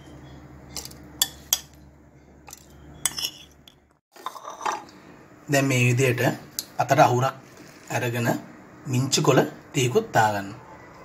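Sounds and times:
utensils clinking against dishes: 2.5 - 4.9.

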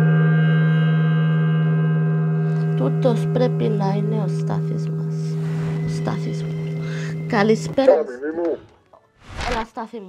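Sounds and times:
gong ringing: 0.0 - 7.9.

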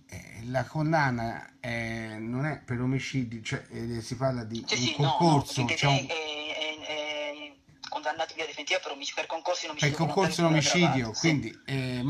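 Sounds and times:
person speaking: 3.6 - 6.9, 9.7 - 12.0.

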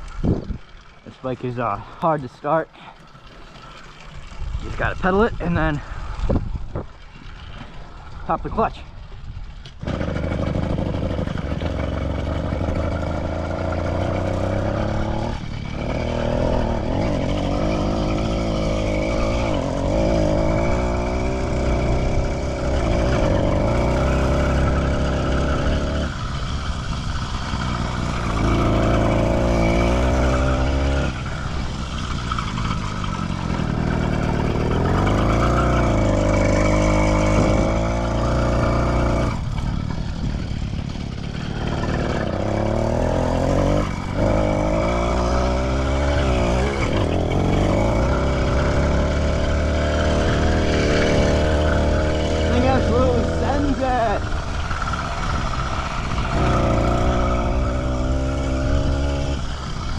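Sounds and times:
small petrol engine revving: 9.8 - 59.9.

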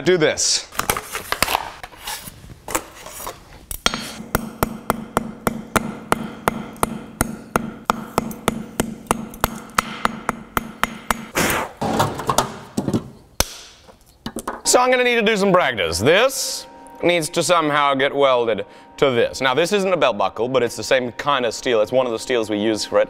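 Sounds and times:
hammer striking metal on anvil: 3.8 - 11.3.

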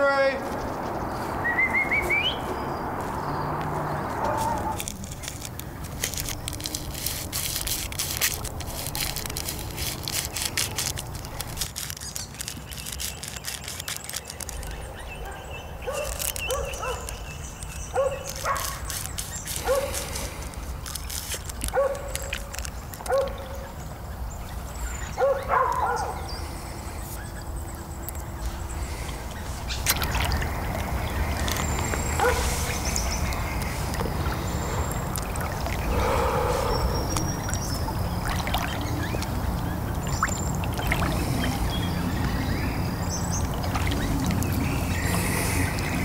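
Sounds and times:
dense crackling: 4.5 - 14.8
dog barking: 15.2 - 17.1, 17.9 - 18.8, 21.7 - 22.1, 23.1 - 23.5, 25.2 - 26.3, 32.2 - 32.5.

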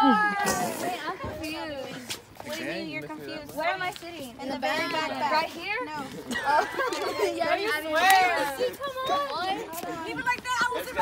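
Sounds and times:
group chatter and laughter: 0.0 - 11.0.

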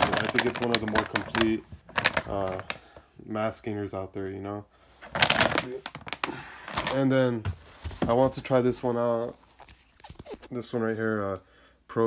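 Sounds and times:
plastic bag crinkling: 0.0 - 2.8, 5.1 - 7.1.

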